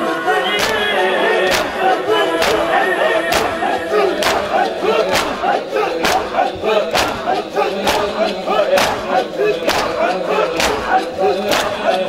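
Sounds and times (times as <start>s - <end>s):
crowd of men chanting: 0.0s - 12.0s
unison chest-beating strikes: 0.3s - 12.0s.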